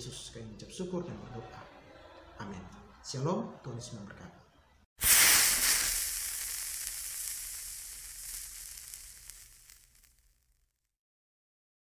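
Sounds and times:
sizzling sparks crackling: 0:05.0 - 0:11.0.

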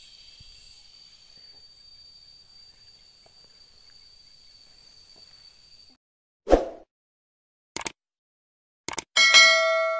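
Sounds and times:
insects droning: 0:00.0 - 0:06.0.

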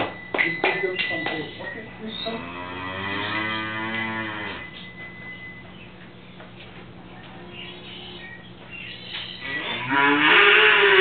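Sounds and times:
cow mooing: 0:02.3 - 0:04.8, 0:09.4 - 0:11.0.

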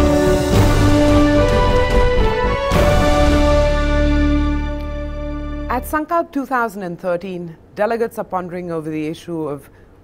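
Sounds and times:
theme music chords over pulsing bass: 0:00.0 - 0:05.8.

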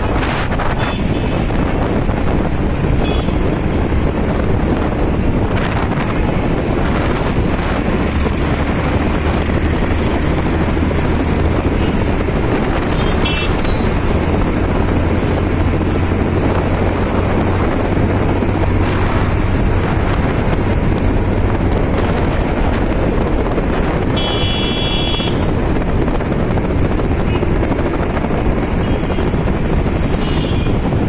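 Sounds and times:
motorcycle engine and tyres hum: 0:00.0 - 0:31.0
wind noise on microphone: 0:00.0 - 0:31.0.

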